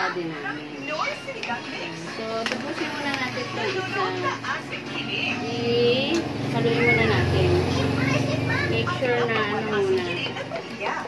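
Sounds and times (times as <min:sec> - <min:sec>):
speech from television: 0:00.0 - 0:11.0.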